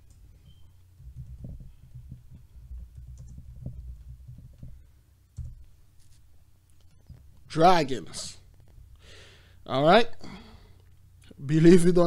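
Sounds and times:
typing on computer keyboard: 1.0 - 4.8.

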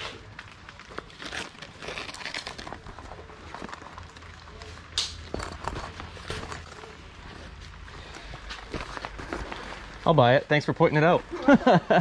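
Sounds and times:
fabric bag rustling: 0.7 - 4.6, 5.2 - 10.2.

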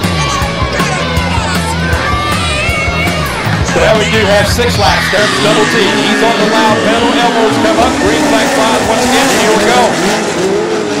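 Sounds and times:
race car engines revving: 0.0 - 11.0.

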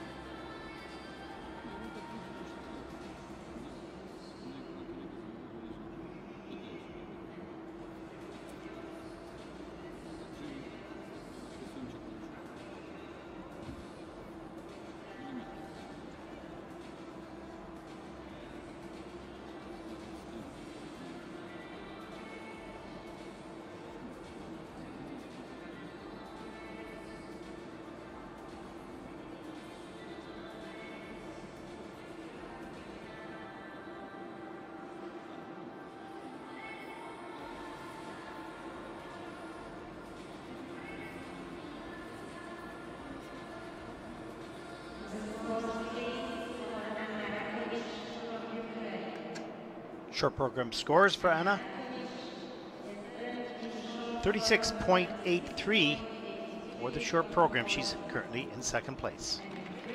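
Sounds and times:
music over arena sound system: 54.2 - 56.0, 56.7 - 59.4.

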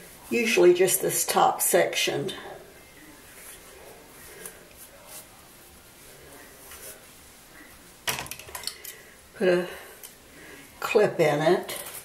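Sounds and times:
comb rustling through hair: 3.2 - 9.2, 10.8 - 12.0.

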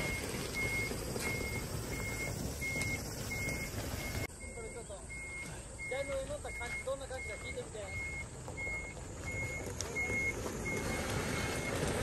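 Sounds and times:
truck rumbling over gravel: 0.0 - 4.3, 5.4 - 12.0
reversing alarm beeping: 0.0 - 12.0.

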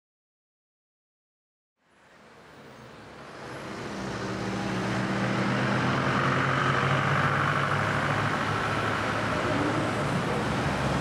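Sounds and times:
vehicle-like rumble: 2.0 - 11.0.

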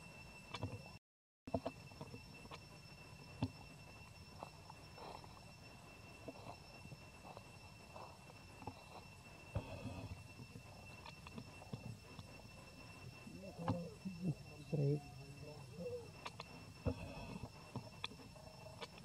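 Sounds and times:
faint steady high tone: 0.0 - 19.0.

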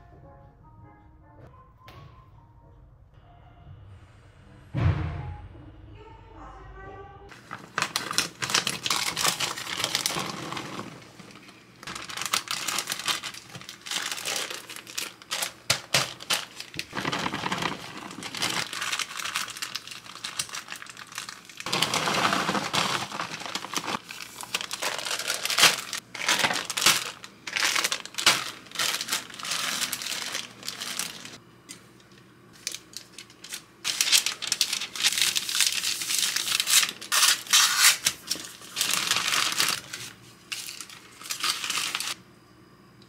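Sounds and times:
plastic bags crinkling: 7.3 - 31.4, 32.6 - 42.2.

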